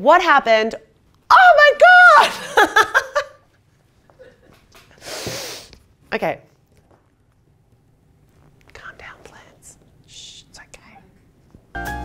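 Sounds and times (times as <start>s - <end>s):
woman whispering: 8.7s - 11.2s
piano music: 11.7s - 12.0s.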